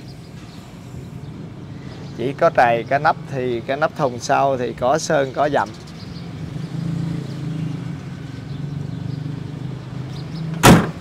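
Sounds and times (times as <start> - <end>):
sharp loud knock: 10.6 - 11.0.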